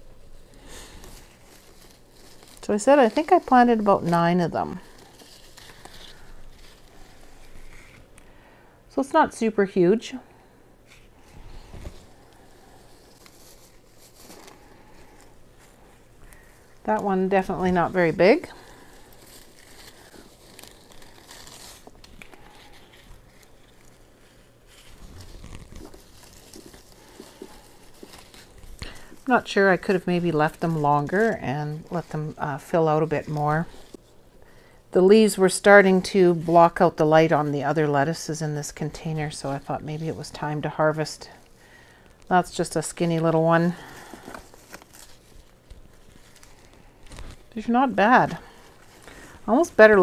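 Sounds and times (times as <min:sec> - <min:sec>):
rustling of leafy plants: 0:00.1 - 0:08.4, 0:10.8 - 0:50.0.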